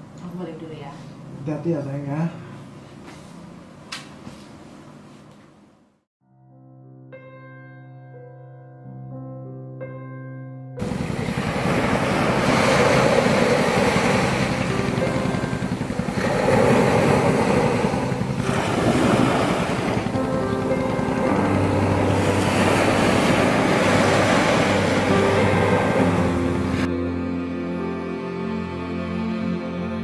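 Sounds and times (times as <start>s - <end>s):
soft background music: 6.3s - 30.0s
sea surf breaking on beach: 10.8s - 26.9s.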